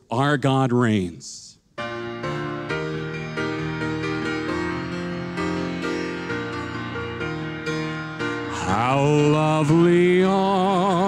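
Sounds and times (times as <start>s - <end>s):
keyboard chords: 1.8s - 11.0s
person singing with vibrato: 8.4s - 11.0s.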